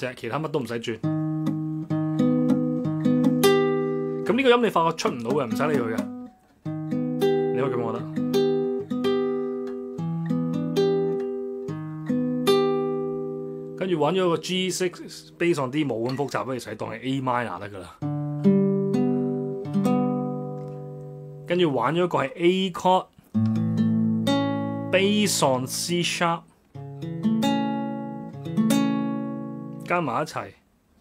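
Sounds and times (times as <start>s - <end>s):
classical guitar playing: 1.0s - 15.8s, 18.0s - 21.5s, 23.3s - 29.9s.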